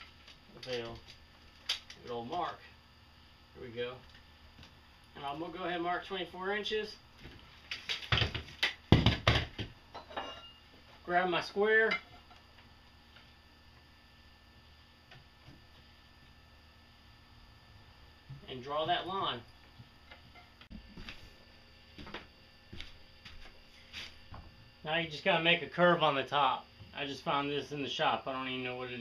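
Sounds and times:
wood and tools knocking on workbench: 0:08.1 - 0:09.8.

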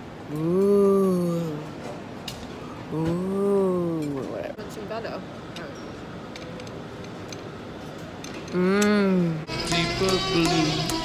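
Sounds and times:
busy indoor bar din: 0:00.0 - 0:11.0.

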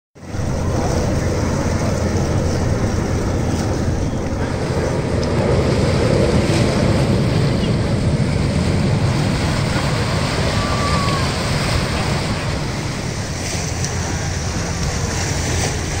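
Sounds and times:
lake water hissing: 0:00.2 - 0:16.0
wind buffeting microphone: 0:00.2 - 0:16.0.

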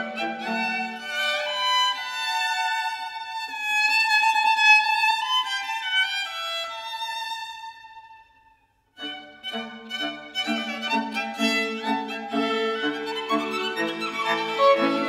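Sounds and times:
string ensemble: 0:00.0 - 0:08.1, 0:09.0 - 0:15.0
violin melody: 0:00.0 - 0:08.3, 0:09.0 - 0:15.0.

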